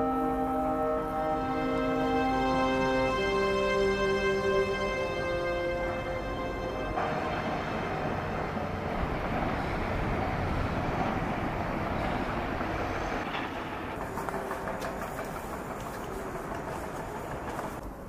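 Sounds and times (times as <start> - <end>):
rumbling hiss outdoors: 0.0 - 18.0.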